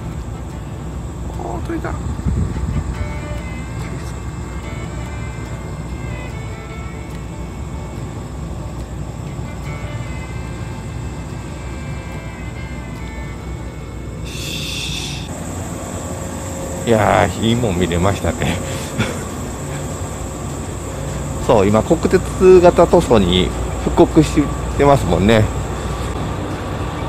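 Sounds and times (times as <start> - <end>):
music of short stepped notes: 0.0 - 15.0
electric train rumbling past: 0.0 - 27.0
burst of hiss: 14.2 - 15.3.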